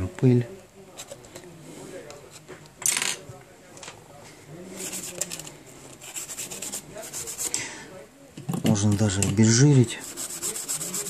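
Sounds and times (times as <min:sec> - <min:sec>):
rhythmic scratchy strokes: 0:10.0 - 0:11.0.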